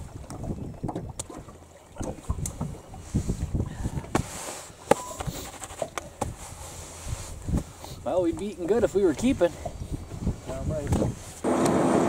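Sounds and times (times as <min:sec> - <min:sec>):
wind on microphone: 0:00.0 - 0:01.3, 0:02.0 - 0:04.4, 0:06.2 - 0:11.5
water lapping against boat hull: 0:00.0 - 0:11.8.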